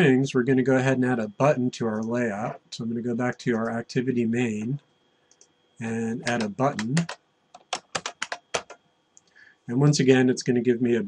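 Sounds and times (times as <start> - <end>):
computer keyboard typing: 6.2 - 8.8.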